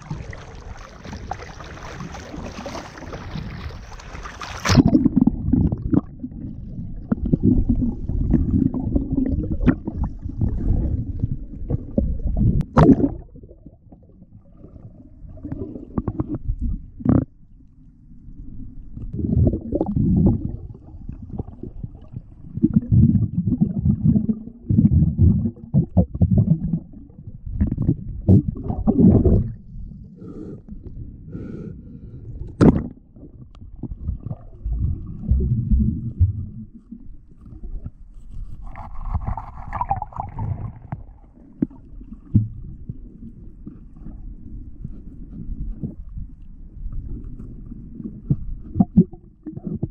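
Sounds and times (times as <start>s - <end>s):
muffled underwater rumble: 0.0s - 49.9s.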